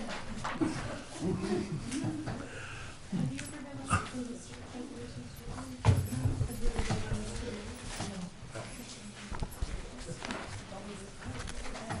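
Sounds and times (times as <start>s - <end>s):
faint chatter of people: 0.0s - 12.0s.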